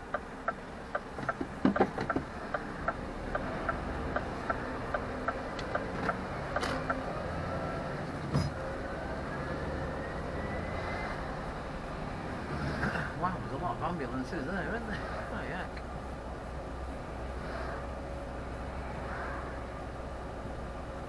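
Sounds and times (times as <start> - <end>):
engine drone: 0.0 - 21.0
knocks: 1.2 - 2.3
rising engine whine: 2.0 - 21.0.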